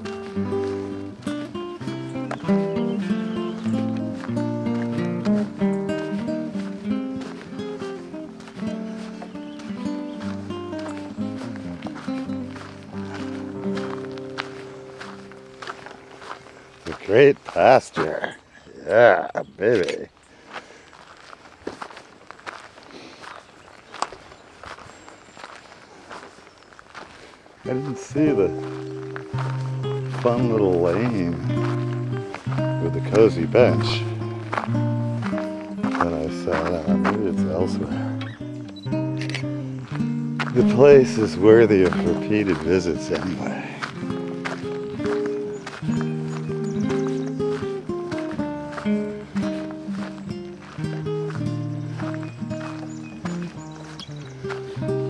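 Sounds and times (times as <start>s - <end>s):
plucked acoustic guitar: 0.0s - 18.3s, 27.6s - 55.0s
footsteps on dirt trail: 0.0s - 55.0s.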